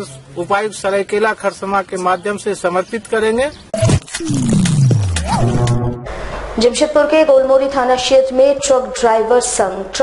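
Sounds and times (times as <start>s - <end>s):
deep tone sliding downward: 3.8s - 6.6s
sharp hits: 3.8s - 6.6s
short rising and falling tone: 3.8s - 6.6s.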